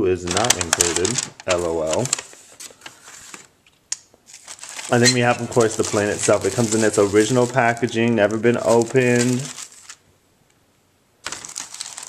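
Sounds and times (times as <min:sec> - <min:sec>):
paper and plastic crinkling: 0:00.2 - 0:03.6, 0:04.2 - 0:10.0, 0:11.2 - 0:12.0.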